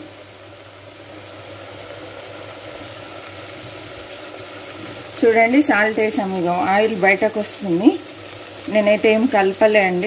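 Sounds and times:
food sizzling in pressure cooker: 0.0 - 10.0.

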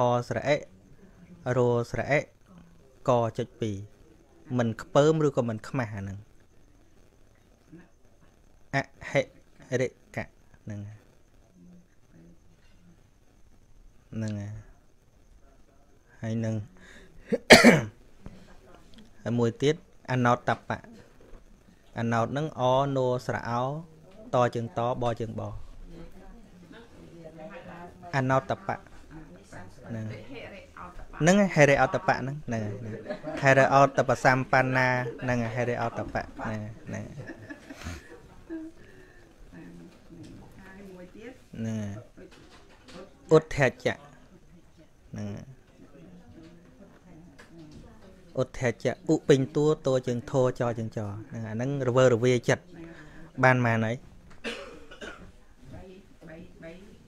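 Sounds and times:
quiet low speech: 0.0 - 57.0
man coughing: 17.3 - 17.9, 54.4 - 55.3
throat clearing sound: 17.3 - 17.9, 54.4 - 55.3.

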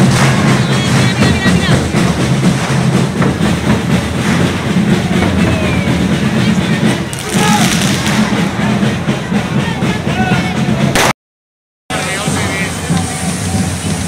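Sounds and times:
fireworks hissing and crackling: 0.0 - 9.2, 11.9 - 14.0
drums beating: 0.0 - 11.1, 11.9 - 14.0
crowd shouting: 4.7 - 11.0.

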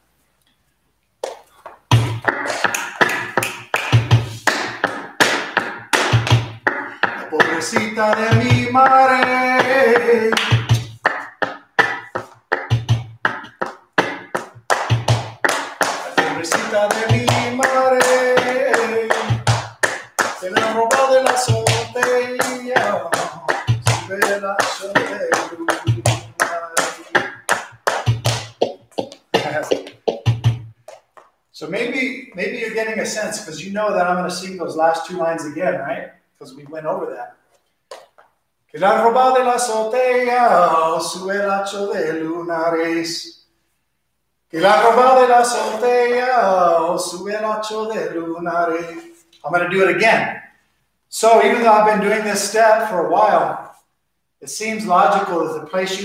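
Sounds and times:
heavy foot stamp: 1.2 - 31.3
dance shoes tapping on wooden floor: 1.2 - 31.4, 37.9 - 38.4
man singing: 6.8 - 10.7, 16.0 - 27.6, 38.8 - 43.3, 44.5 - 50.2, 51.2 - 53.5, 54.6 - 56.0.

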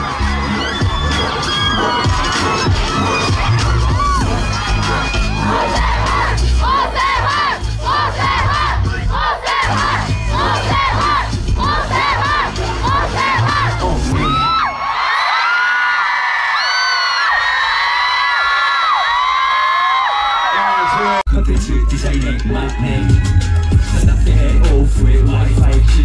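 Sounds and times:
low bass beat: 0.0 - 14.4, 21.3 - 26.0
crowd screaming and cheering: 0.0 - 26.0.

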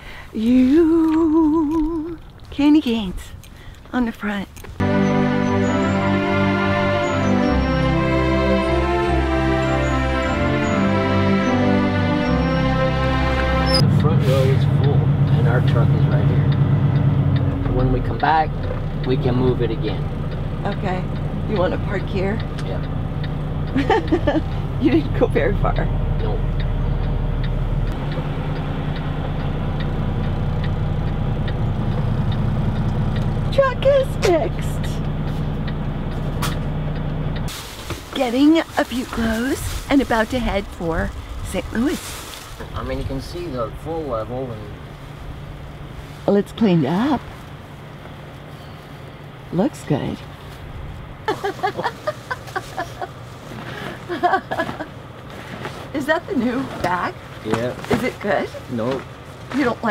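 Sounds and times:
diesel truck engine running: 4.8 - 59.9
light regular ticking: 13.9 - 37.5
person laughing in bursts: 23.8 - 24.6, 51.3 - 53.2, 54.0 - 55.0.

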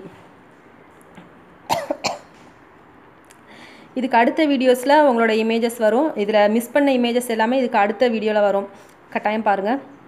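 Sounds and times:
short cough: 1.7 - 2.4.

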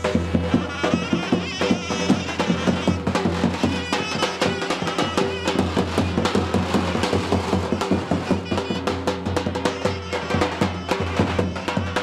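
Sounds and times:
large drum beating: 0.0 - 12.0
reedy wind instrument melody: 0.0 - 12.0.

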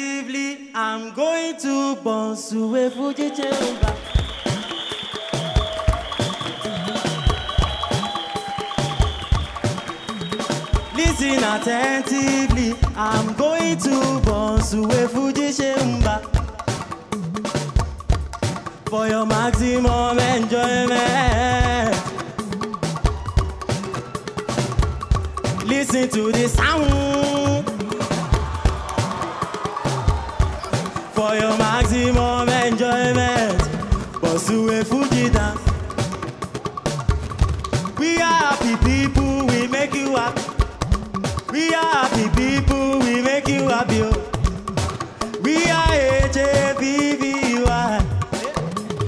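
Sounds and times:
drum kit steady beat: 3.3 - 49.0
talking drums pitch-bending strokes: 3.3 - 49.0.

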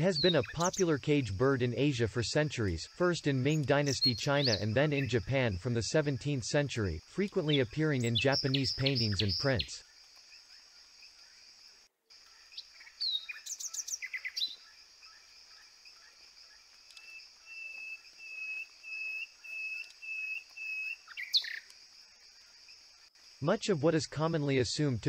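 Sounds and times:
sparrow calls and chirps: 0.0 - 0.9, 7.4 - 9.7, 12.6 - 14.6, 17.0 - 21.7
steady high hiss: 0.0 - 25.0.

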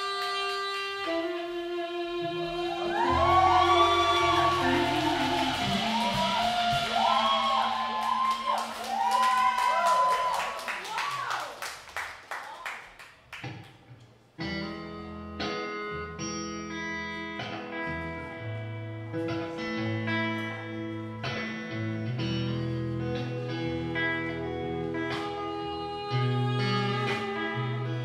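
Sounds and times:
blues band playing live: 0.0 - 9.1, 14.4 - 28.0
bending lead guitar line: 0.1 - 9.2, 14.4 - 28.0
steady bass line: 2.7 - 8.6.

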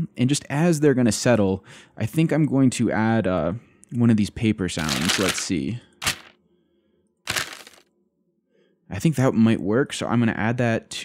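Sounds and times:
paper rustling crackle: 4.8 - 6.3, 7.3 - 7.8.

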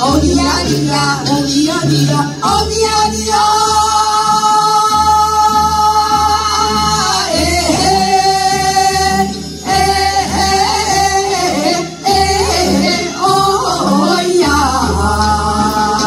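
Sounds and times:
women singing together: 0.0 - 16.0.

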